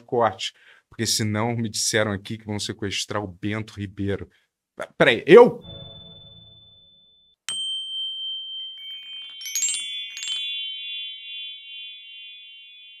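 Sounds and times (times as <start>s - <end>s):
chime logo sting: 5.6s - 7.4s.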